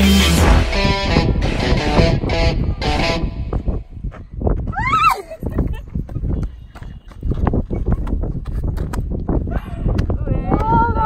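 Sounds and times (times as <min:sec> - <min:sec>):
knocks and scuffs: 0:03.6 - 0:10.7
woman squealing: 0:04.7 - 0:05.5.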